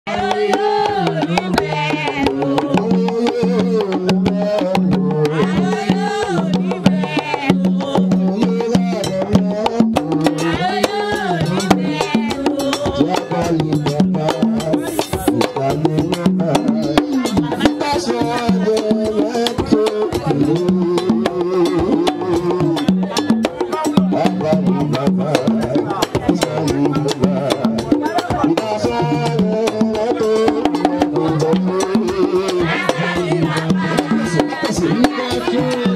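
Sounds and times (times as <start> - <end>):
women singing a chant: 0.1 - 23.1, 23.7 - 35.9
fast hand drumming: 0.1 - 35.9.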